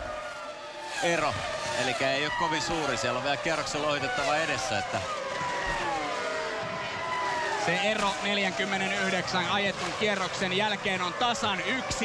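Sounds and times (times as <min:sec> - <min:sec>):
race car engines at high revs: 0:00.0 - 0:12.0.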